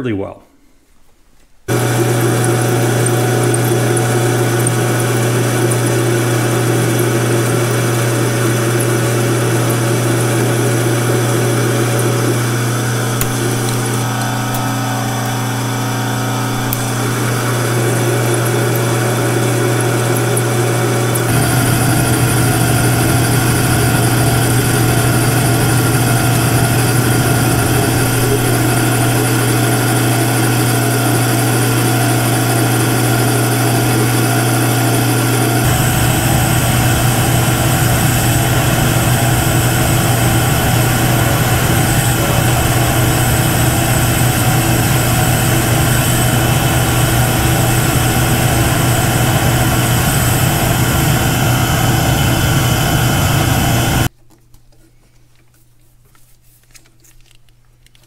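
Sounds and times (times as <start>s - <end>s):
metal lathe cutting: 1.7s - 54.1s.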